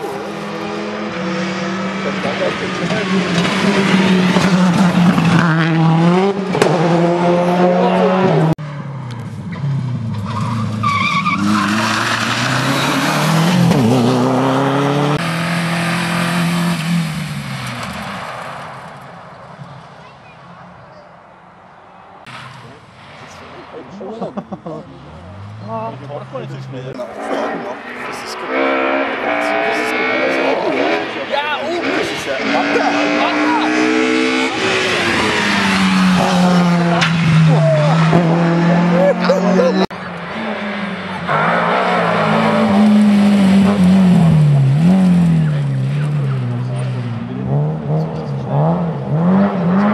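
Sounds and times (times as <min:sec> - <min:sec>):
rally car engines at full throttle: 0:00.0 - 0:20.8, 0:22.2 - 0:49.9.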